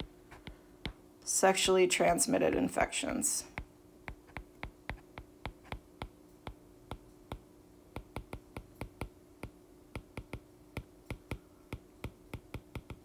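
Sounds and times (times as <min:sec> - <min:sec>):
faint steady hum: 0:00.0 - 0:13.0
stylus tapping on glass screen: 0:03.6 - 0:13.0.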